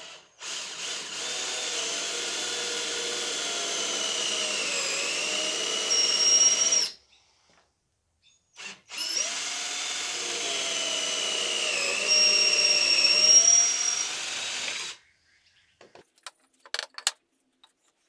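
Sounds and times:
cordless drill boring into wood: 0:00.0 - 0:07.0, 0:08.6 - 0:15.0.

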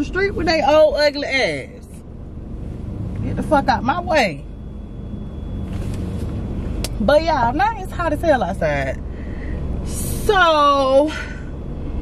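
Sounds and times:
car cabin road and engine rumble: 0:00.0 - 0:12.0.

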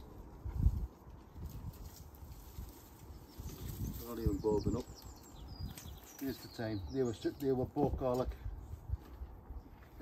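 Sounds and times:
rustling of soil and leaves: 0:00.0 - 0:10.0.

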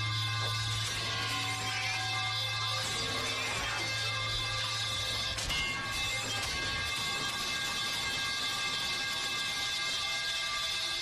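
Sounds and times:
hissing drone with high tones: 0:00.0 - 0:11.0.

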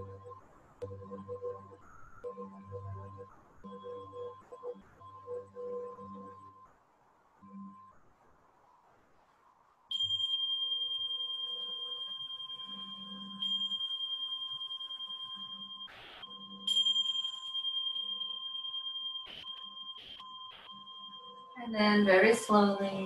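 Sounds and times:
tingsha cymbals ringing: 0:09.9 - 0:23.0.

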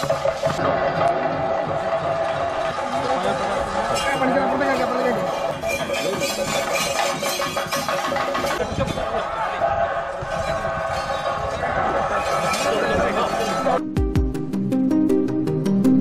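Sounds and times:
drums striking: 0:00.0 - 0:09.2
crowd voices: 0:00.6 - 0:13.8
hand cymbals clashing: 0:04.0 - 0:09.0.

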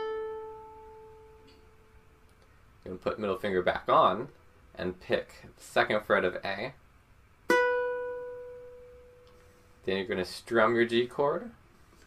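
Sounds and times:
ukulele string plucked: 0:07.5 - 0:09.4.

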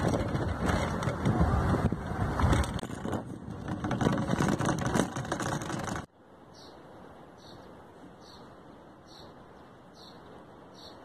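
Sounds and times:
rattles and knocks: 0:00.0 - 0:06.1.

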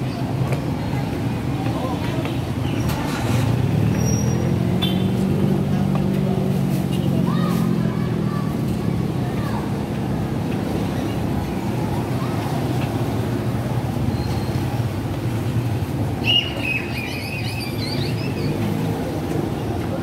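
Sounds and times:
street traffic noise: 0:00.0 - 0:20.0.

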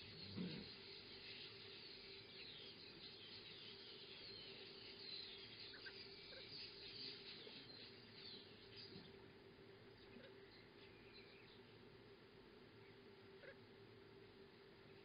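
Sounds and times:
distant birds chirping: 0:00.0 - 0:15.0
low steady hum: 0:00.0 - 0:15.0.

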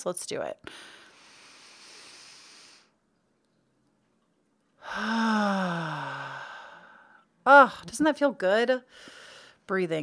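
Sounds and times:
woman breathing in: 0:00.7 - 0:03.0, 0:04.8 - 0:07.2, 0:08.9 - 0:09.6.

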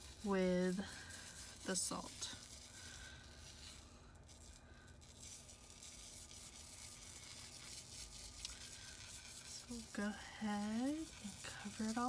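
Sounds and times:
salt grains pouring onto paper: 0:00.0 - 0:12.0.

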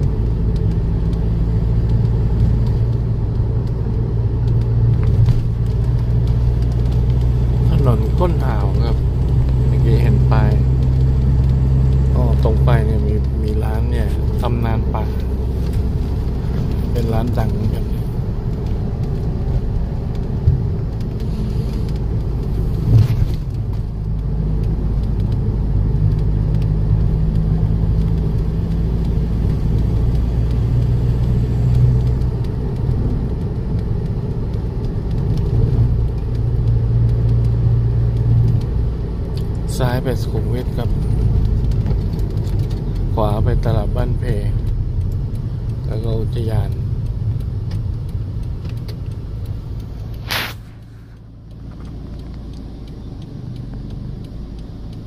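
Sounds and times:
car engine and road hum: 0:00.0 - 0:55.0.

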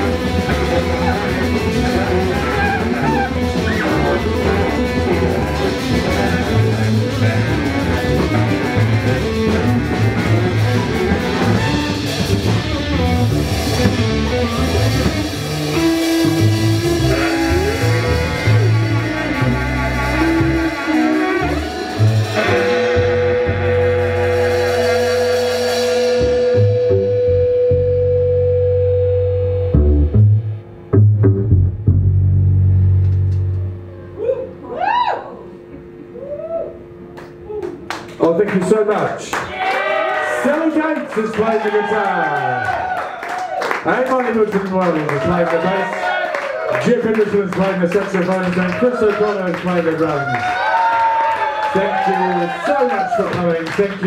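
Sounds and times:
saxophone: 0:00.0 - 0:28.6
drum kit: 0:00.0 - 0:33.8
upright double bass: 0:00.0 - 0:34.2
electric guitar: 0:00.0 - 0:38.2.

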